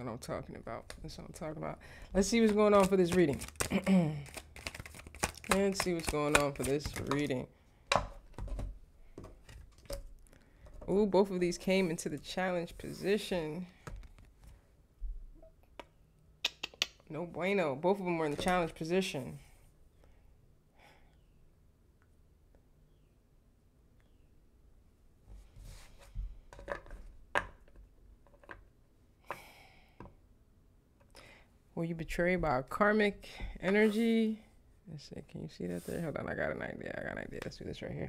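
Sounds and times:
cards rustling: 0:02.1 - 0:07.4.

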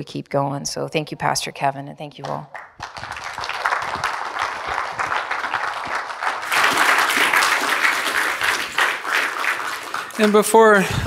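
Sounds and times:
congregation applauding: 0:02.5 - 0:11.0.

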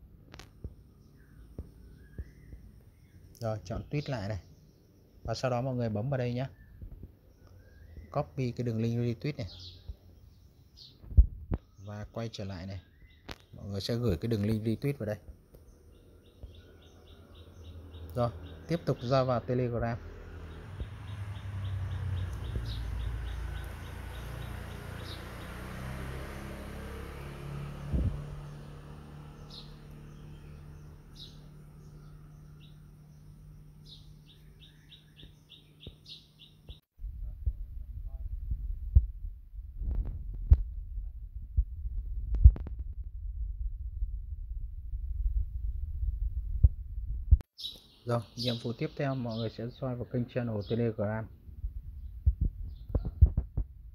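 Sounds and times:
background rumble and hum: 0:27.6 - 0:47.5, 0:51.2 - 0:53.9
rough low rumble: 0:37.0 - 0:47.4, 0:51.3 - 0:53.9.

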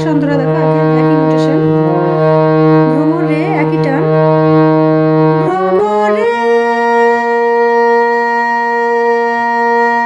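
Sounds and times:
person singing: 0:00.0 - 0:04.4, 0:05.3 - 0:10.0
harmonium drone: 0:00.0 - 0:10.0.

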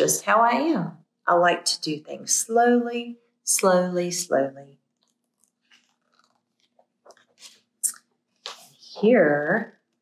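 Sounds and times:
book pages turning: 0:05.0 - 0:08.8.

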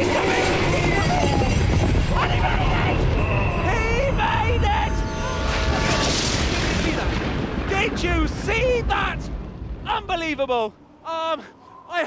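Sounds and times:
low rumble: 0:00.0 - 0:11.1
rushing whoosh: 0:01.6 - 0:07.8.

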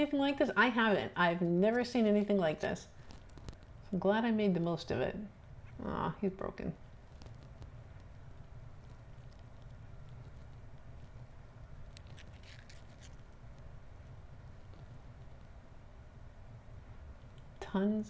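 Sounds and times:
seashells clicking and scraping: 0:02.2 - 0:03.8, 0:06.9 - 0:13.7.

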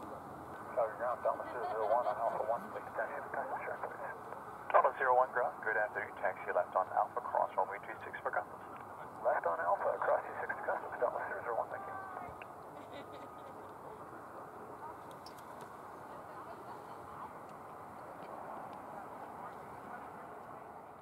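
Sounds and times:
radio static hiss: 0:00.0 - 0:12.4
faint voices in static: 0:00.0 - 0:21.0
pilot speaking over radio: 0:00.6 - 0:12.2.

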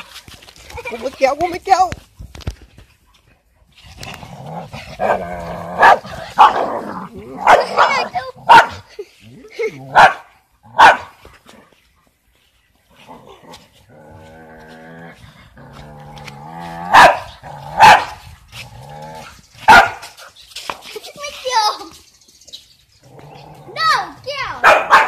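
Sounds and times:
dog barking: 0:05.8 - 0:06.8, 0:07.4 - 0:08.8, 0:09.9 - 0:11.1, 0:16.9 - 0:18.2, 0:19.7 - 0:20.1, 0:24.6 - 0:25.0.

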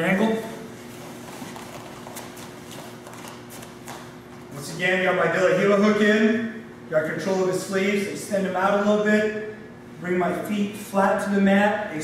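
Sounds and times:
room tone hum: 0:00.0 - 0:12.0
taps and shuffles on a mat: 0:00.9 - 0:04.5.

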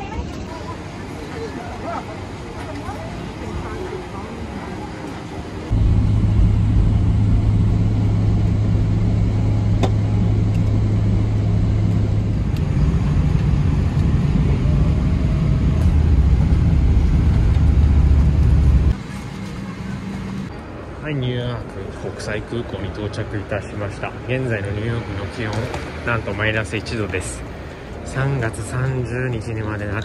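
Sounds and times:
jet engine drone in cabin: 0:00.0 - 0:20.5
low hum: 0:05.6 - 0:20.6.

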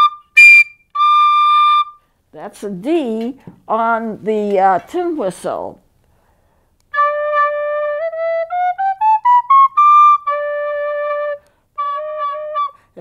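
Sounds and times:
tin whistle playing a scale: 0:00.0 - 0:02.0, 0:07.0 - 0:12.8.

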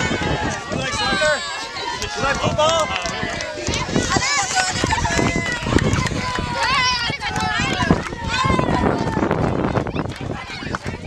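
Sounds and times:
children singing and shouting: 0:00.0 - 0:11.0.

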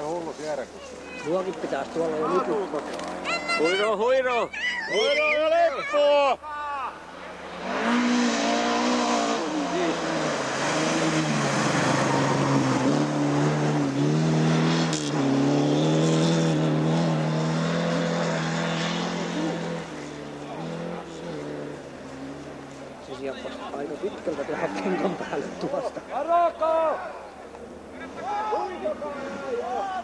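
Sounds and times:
rally car engine revving hard: 0:07.4 - 0:22.6.

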